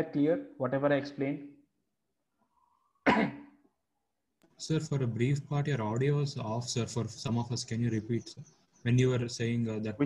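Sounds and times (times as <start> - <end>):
person coughing: 3.1 - 3.6.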